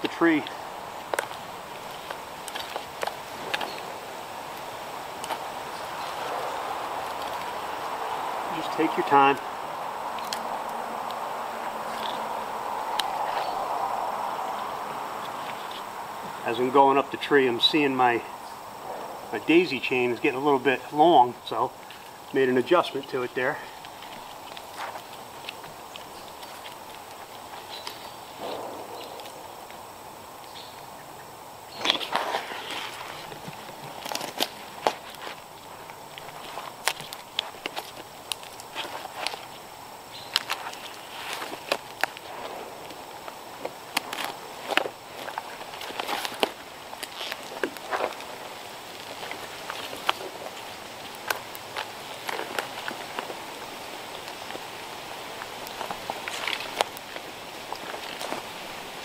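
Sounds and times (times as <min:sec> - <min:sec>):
rustling: 0:00.0 - 0:31.0, 0:31.6 - 0:59.0.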